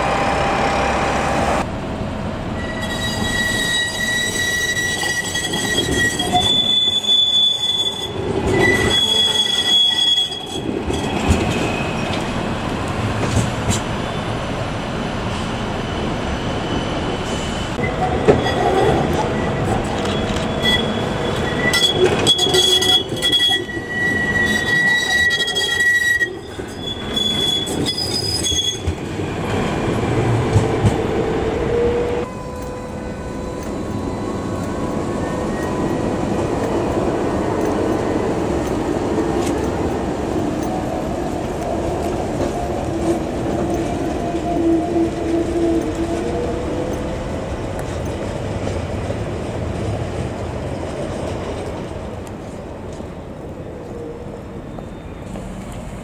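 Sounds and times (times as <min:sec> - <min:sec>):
tram rolling rumble: 0:00.0 - 0:56.0
tram whine: 0:00.0 - 0:56.0
tram wheels squealing: 0:02.5 - 0:52.2, 0:53.0 - 0:56.0.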